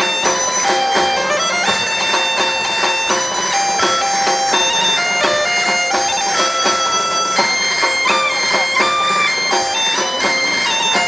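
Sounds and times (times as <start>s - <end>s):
bagpipe melody with drone: 0.0s - 11.0s
drum beat: 0.0s - 11.0s.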